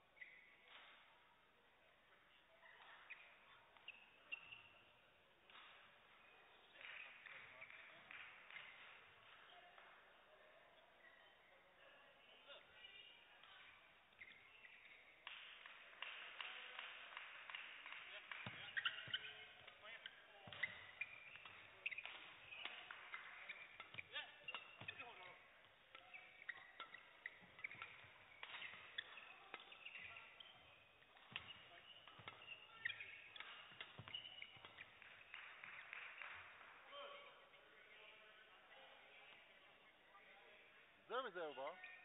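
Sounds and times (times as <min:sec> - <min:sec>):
shoes squeaking on court: 0:00.2 - 0:01.0, 0:02.6 - 0:09.8, 0:12.7 - 0:16.1, 0:17.5 - 0:36.5
rackets striking shuttlecock: 0:13.4 - 0:36.4.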